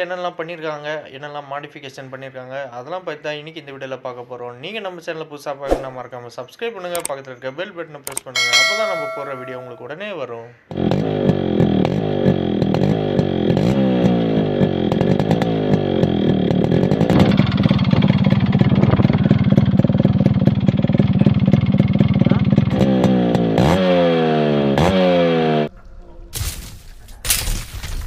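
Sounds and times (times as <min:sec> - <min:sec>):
two-stroke motorcycle engine revving: 0:10.7 - 0:25.7.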